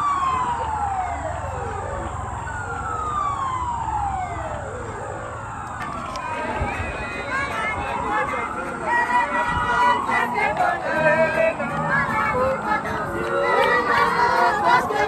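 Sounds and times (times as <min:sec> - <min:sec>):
siren wailing: 0:00.0 - 0:15.0
voices: 0:05.7 - 0:15.0.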